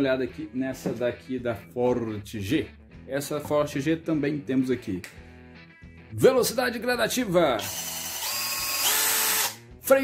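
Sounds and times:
cordless drill motor whine: 7.6 - 9.6.

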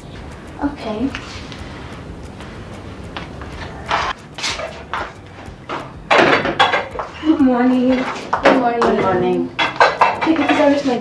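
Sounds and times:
kitchen pots and dishes clattering: 5.8 - 7.2, 7.8 - 11.0.

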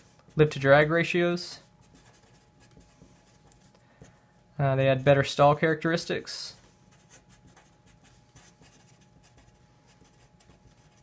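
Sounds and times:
marker scratching on paper: 0.0 - 0.6, 1.6 - 4.2, 6.6 - 11.0.

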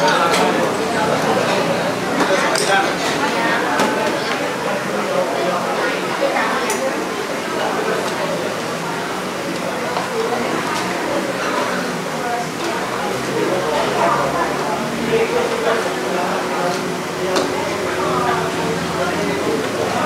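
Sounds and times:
background chatter: 0.0 - 20.0.

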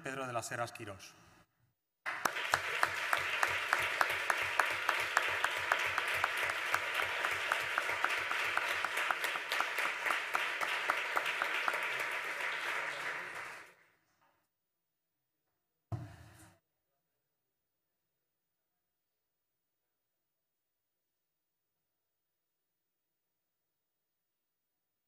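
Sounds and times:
nearby person clapping steadily: 2.1 - 13.7
audience applauding: 2.1 - 13.9.

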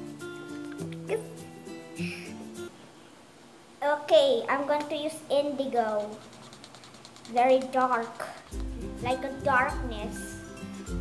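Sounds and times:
young girl's voice: 3.8 - 6.2, 7.3 - 8.4, 9.0 - 10.4.

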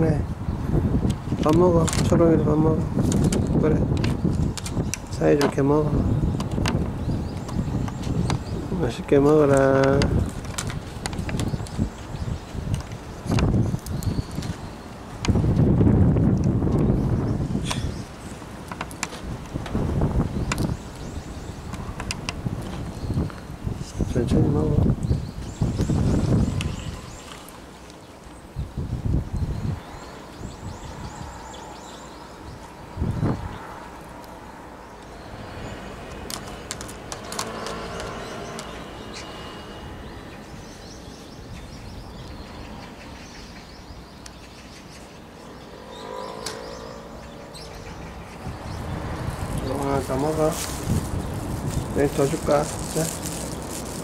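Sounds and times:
low city hum: 0.0 - 54.0
wind buffeting microphone: 0.0 - 54.0.

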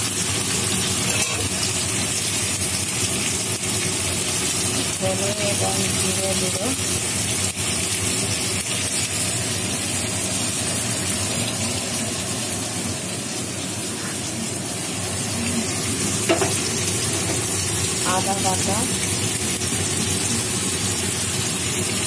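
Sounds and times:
vegetables sizzling in oil: 0.0 - 22.0.

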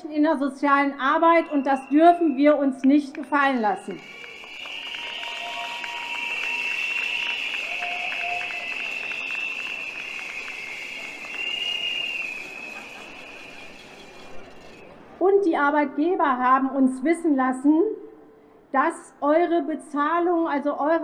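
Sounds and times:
crowd blowing shrill whistles: 1.3 - 2.6, 3.2 - 14.9.

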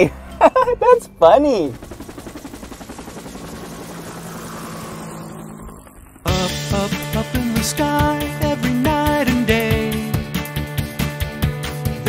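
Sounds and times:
helicopter rotor blades chopping: 0.0 - 11.3.

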